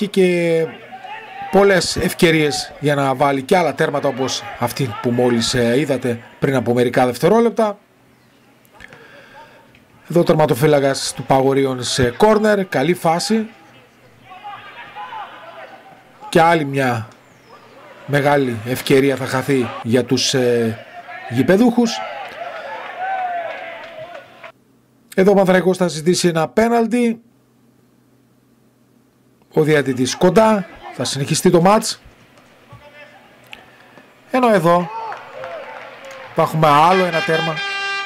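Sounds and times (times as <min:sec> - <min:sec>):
distant voices calling out: 0:00.0 - 0:24.5, 0:29.4 - 0:38.0.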